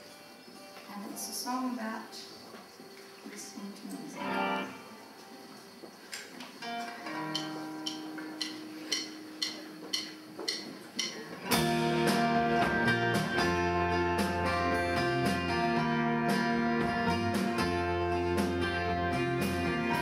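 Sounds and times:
acoustic guitar: 0:00.0 - 0:20.0.

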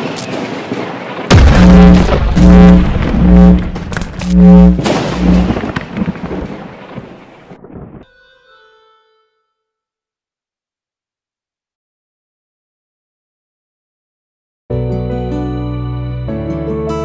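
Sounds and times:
low pulsing bass notes: 0:01.3 - 0:05.7
heavy booming hit: 0:01.3 - 0:05.8
rumbling wash of noise: 0:01.3 - 0:07.2.

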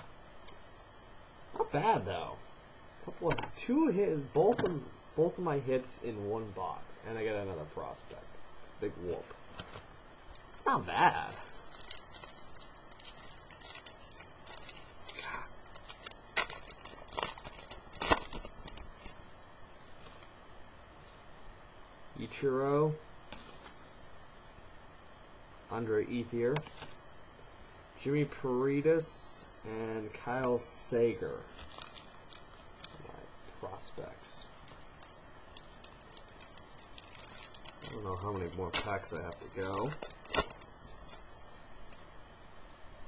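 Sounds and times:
wrapper crinkling and tearing: 0:09.6 - 0:19.2, 0:31.5 - 0:33.0, 0:34.6 - 0:41.3
cards being handled: 0:34.6 - 0:41.2.

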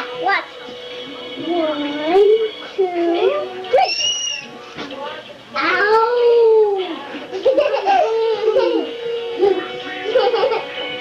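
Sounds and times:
young children squealing: 0:03.8 - 0:04.5.

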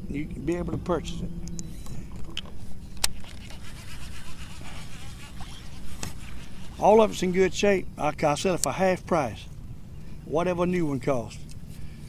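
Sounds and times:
low motor hum: 0:00.0 - 0:12.0.

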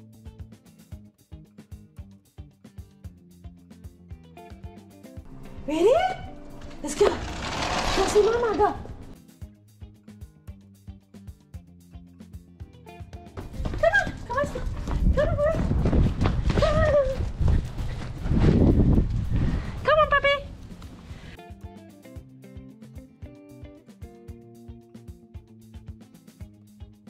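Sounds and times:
soft background music: 0:00.0 - 0:07.2.

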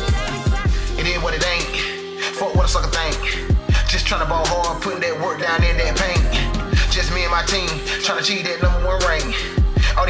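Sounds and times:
man rapping over a beat: 0:00.0 - 0:10.0
deep bass kicks: 0:05.6 - 0:07.4.

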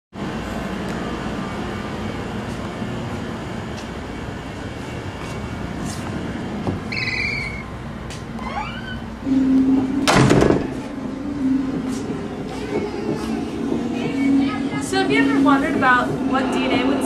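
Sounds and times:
steady broad background noise: 0:00.2 - 0:17.0.

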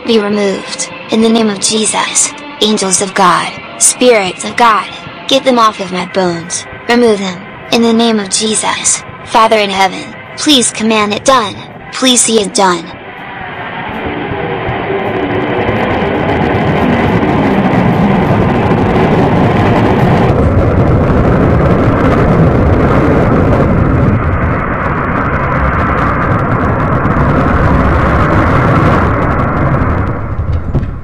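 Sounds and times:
noisy electric guitar drone: 0:00.0 - 0:12.0, 0:12.8 - 0:30.6.

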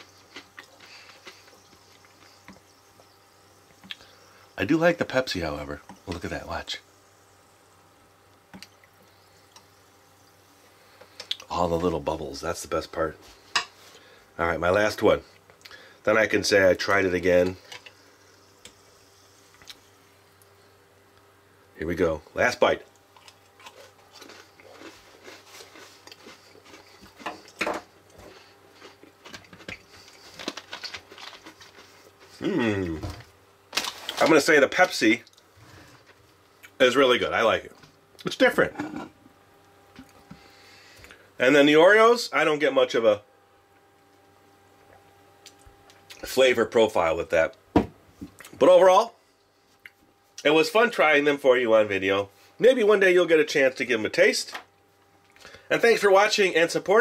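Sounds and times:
person chewing cookie: 0:00.0 - 0:03.1, 0:23.0 - 0:33.2
crunching: 0:23.1 - 0:34.4.

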